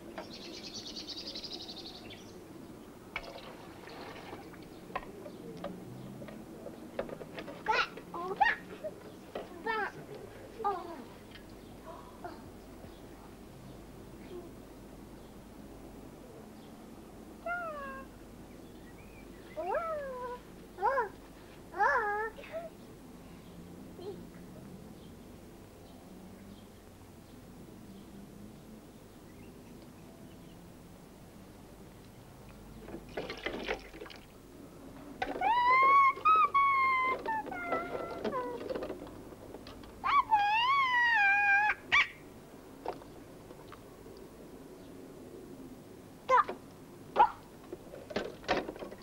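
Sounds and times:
child yelping: 17.4s - 18.1s, 19.6s - 21.2s, 21.8s - 22.7s, 35.3s - 38.6s, 40.0s - 42.2s, 46.3s - 46.5s, 47.2s - 47.4s.

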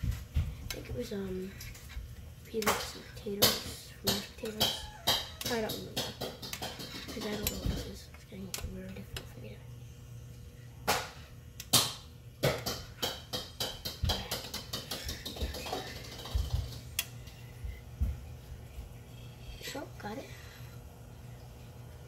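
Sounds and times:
kitchen fan hum: 0.0s - 22.0s
sharp knocks and taps: 2.6s - 8.0s, 11.7s - 16.9s.

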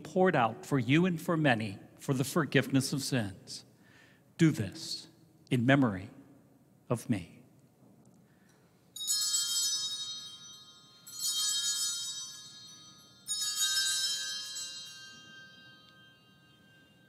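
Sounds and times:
small bells jangling: 8.5s - 17.0s.

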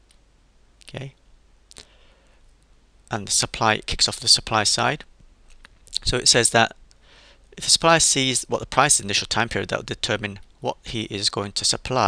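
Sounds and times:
room hiss: 0.0s - 12.0s.

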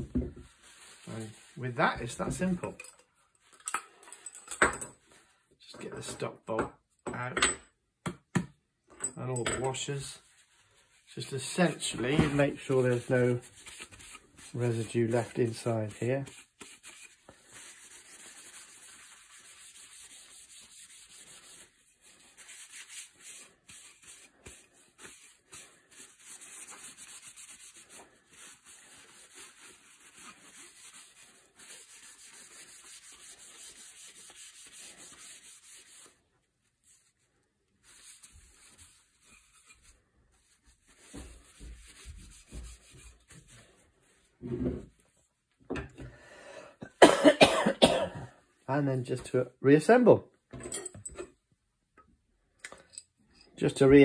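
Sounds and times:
paper towel rubbing wood: 10.2s - 36.2s, 37.8s - 43.8s.

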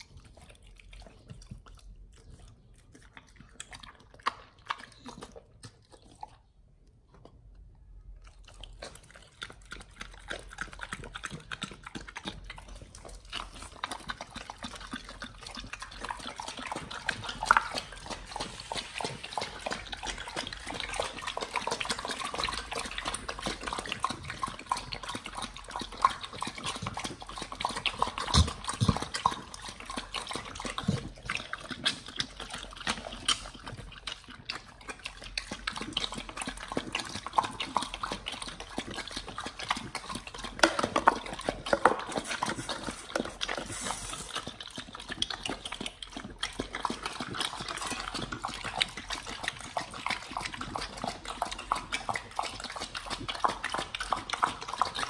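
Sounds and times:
dogs lapping and licking: 0.0s - 55.0s.

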